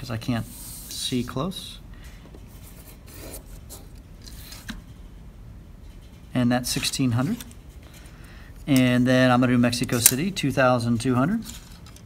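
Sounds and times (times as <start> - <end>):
marker scraping across paper: 0.4 - 1.1.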